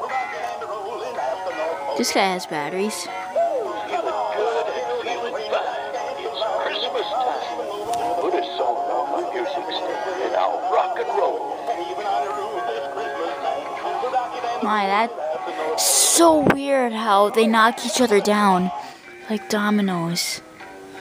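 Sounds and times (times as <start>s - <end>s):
overlapping electronic christmas tunes: 0.0s - 20.3s.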